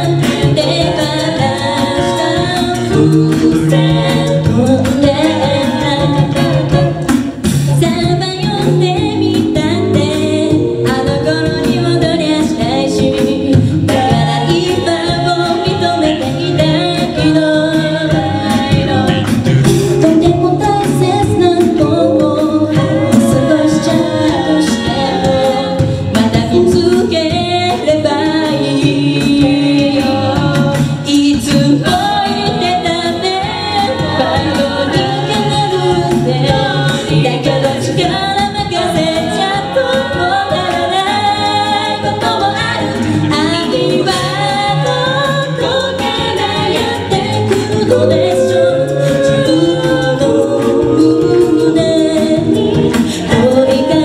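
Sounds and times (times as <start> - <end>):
a cappella group singing: 0.0 - 54.0.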